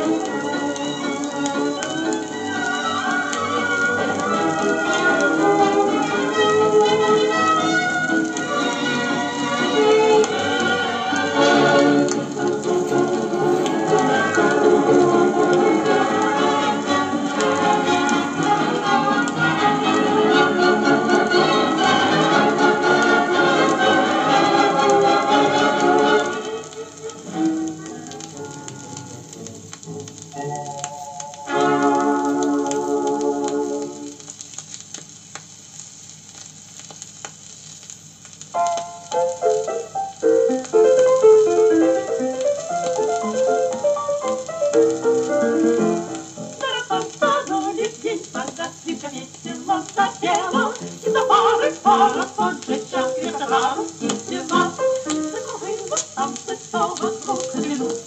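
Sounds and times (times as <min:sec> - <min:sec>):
band music: 0:00.0 - 0:34.3, 0:38.6 - 0:58.0
record crackle: 0:00.0 - 0:58.0
choral singing: 0:46.5 - 0:58.0.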